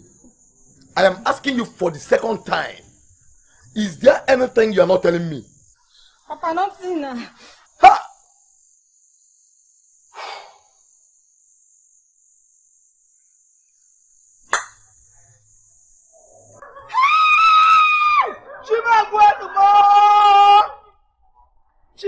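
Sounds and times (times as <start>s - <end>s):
crickets trilling: 0.0s - 22.0s
loud high-pitched scream: 16.7s - 21.0s.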